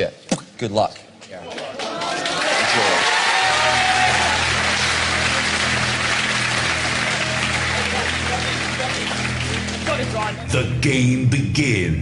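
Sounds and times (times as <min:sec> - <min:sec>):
studio audience applauding and cheering: 0:01.5 - 0:11.0
game show background music: 0:02.5 - 0:12.0.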